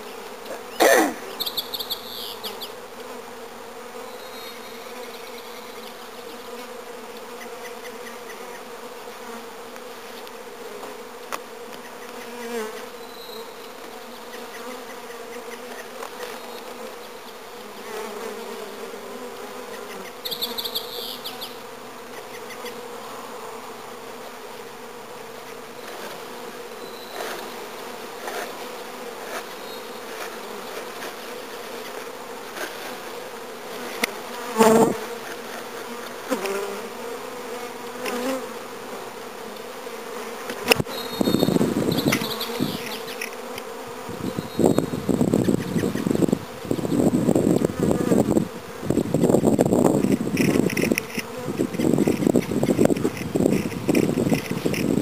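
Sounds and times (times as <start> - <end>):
bees buzzing in swarm: 0.0 - 55.0.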